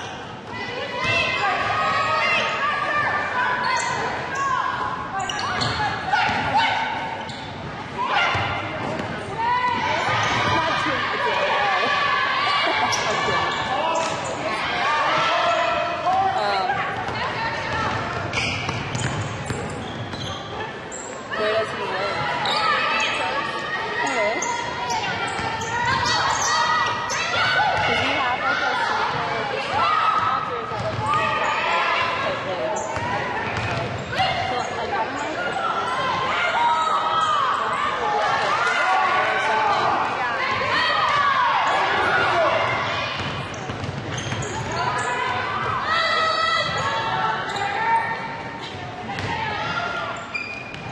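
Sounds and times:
basketball bouncing on court: 17.0 - 20.2, 30.7 - 31.2, 33.0 - 34.1, 43.2 - 44.8, 49.2 - 49.4.

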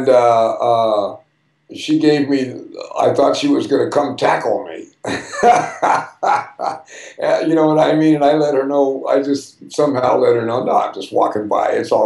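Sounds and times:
man laughing heartily: 5.0 - 7.6.

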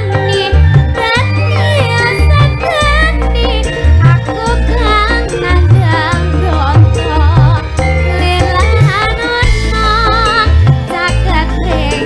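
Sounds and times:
loud band accompaniment: 0.0 - 12.0
woman singing into microphone: 0.0 - 12.0
deep heavy drum beats: 3.9 - 11.5.

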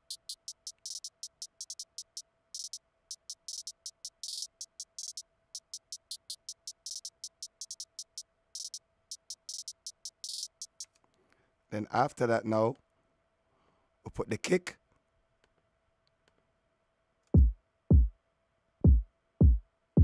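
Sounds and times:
hi-hat ticks and rolls: 0.0 - 10.9
faint steady hum: 0.0 - 20.0.

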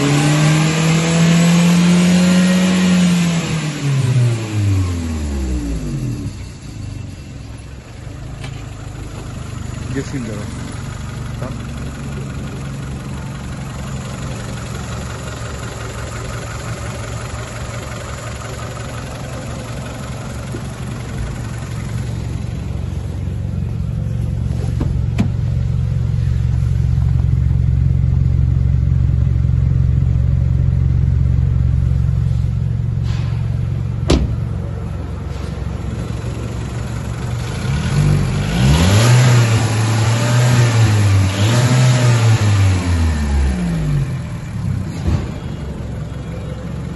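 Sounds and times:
car engine idling and revving: 0.0 - 46.9.

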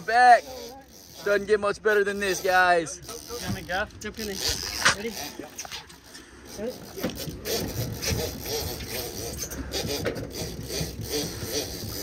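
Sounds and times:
men's voices and calls: 0.0 - 11.5.

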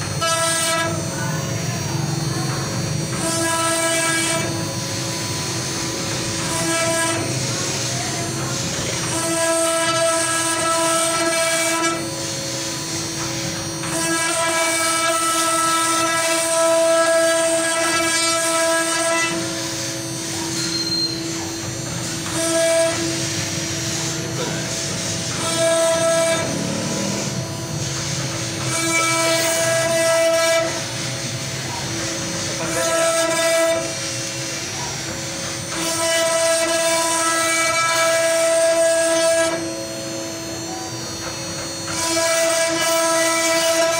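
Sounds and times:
router spindle high whine: 0.0 - 43.9.

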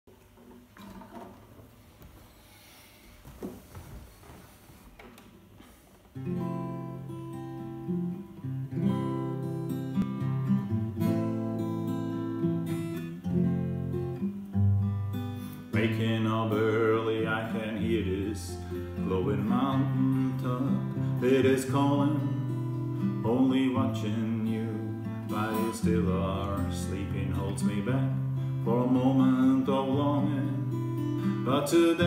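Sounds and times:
faint shuffling: 0.2 - 6.2
acoustic guitar chords: 6.2 - 32.0.

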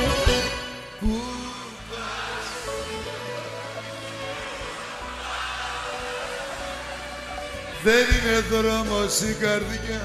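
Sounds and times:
live band playing softly: 0.0 - 10.0.

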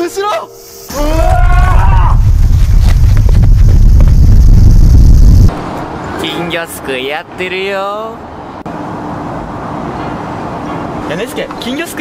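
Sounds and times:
distant road traffic hum: 5.5 - 12.0.

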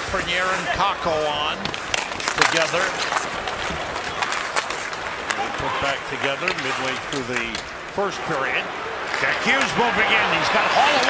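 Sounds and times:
crowd noise: 0.0 - 11.0
hockey sticks and puck clicks: 0.0 - 11.0
skates scraping on ice: 0.0 - 11.0.

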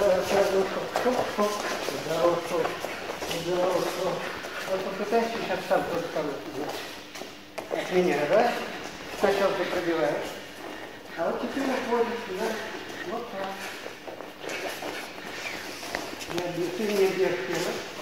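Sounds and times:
footsteps shuffling on mat: 0.0 - 18.0.

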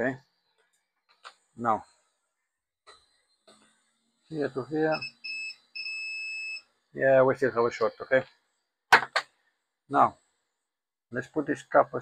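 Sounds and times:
multimeter continuity beeps: 4.4 - 6.7.

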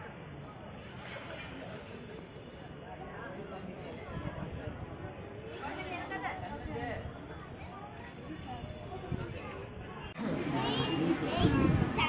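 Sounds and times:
crowd chatter: 0.0 - 12.0
children calling and playing: 3.8 - 12.0.

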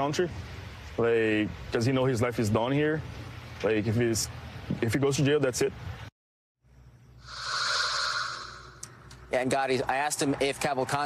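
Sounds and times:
airy whoosh: 7.2 - 9.0.

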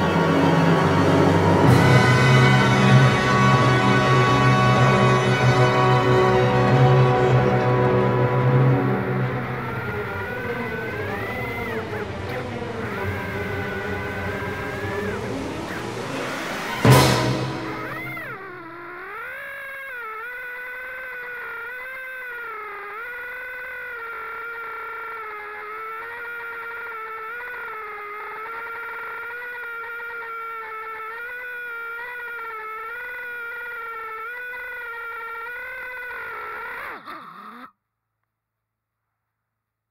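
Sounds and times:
drone motors whining: 0.0 - 37.6.

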